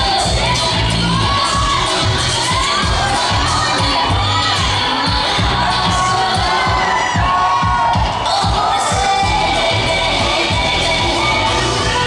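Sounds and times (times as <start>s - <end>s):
samba music with driving beat: 0.0s - 12.0s
spectators shouting and cheering: 0.0s - 12.0s.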